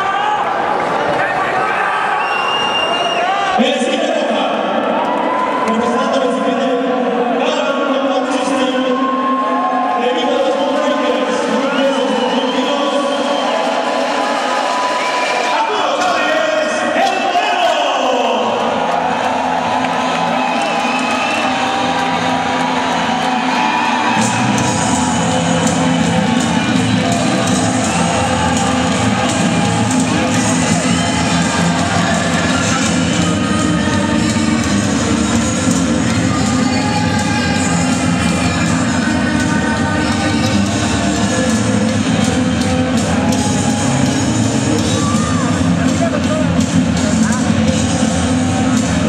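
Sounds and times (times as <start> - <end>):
crowd cheering and shouting: 0.0 - 49.0
loud music over pa: 5.6 - 49.0.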